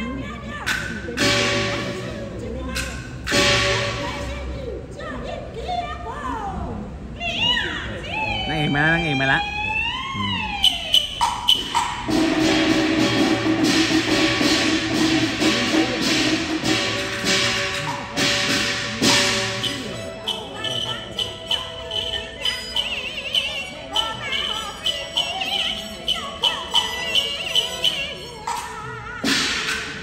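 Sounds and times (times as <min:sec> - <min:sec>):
sharp percussion strikes: 0:00.7 - 0:04.5, 0:10.6 - 0:30.0
man's voice: 0:08.4 - 0:09.5.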